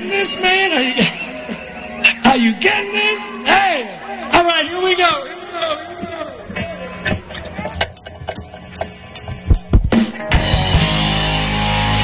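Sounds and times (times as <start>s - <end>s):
rock band playing: 0.0s - 4.4s, 6.4s - 12.0s
crowd voices: 0.0s - 12.0s.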